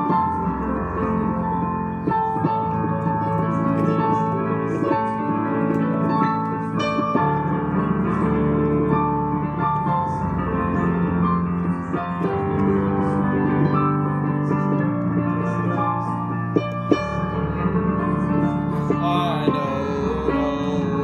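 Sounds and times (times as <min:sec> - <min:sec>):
digital piano chords and melody: 0:00.0 - 0:21.0.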